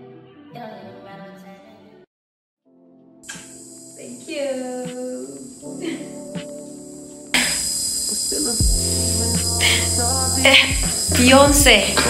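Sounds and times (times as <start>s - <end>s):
soft background music: 0.0s - 2.1s, 2.7s - 12.0s
high-pitched hiss: 3.2s - 12.0s.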